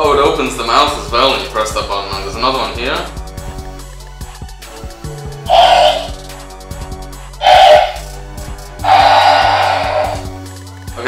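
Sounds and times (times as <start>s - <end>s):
background music with low tones: 0.0s - 11.0s
toy creature roars: 5.5s - 6.2s, 7.4s - 8.1s, 8.8s - 10.3s.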